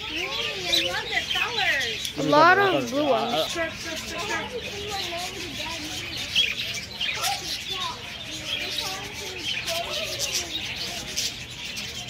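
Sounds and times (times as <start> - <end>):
budgerigars chirping and warbling: 0.0 - 12.0.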